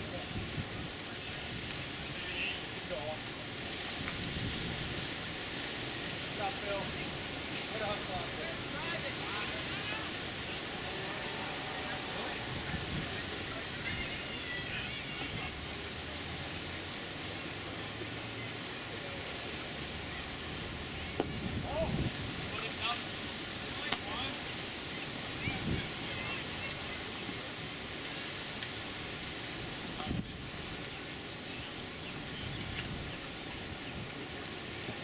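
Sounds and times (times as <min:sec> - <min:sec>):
faint distant voices calling: 0:00.0 - 0:35.0
steady outdoor hiss: 0:00.0 - 0:35.0.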